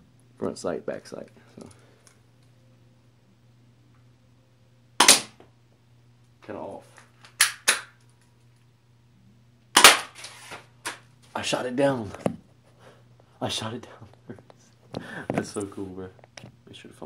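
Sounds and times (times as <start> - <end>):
airsoft pistol shots: 5.0 - 5.4, 9.8 - 10.2.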